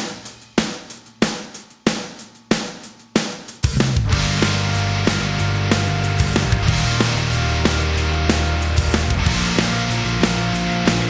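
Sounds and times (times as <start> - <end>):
bass drum and crash cymbal hits: 0.0 - 11.0.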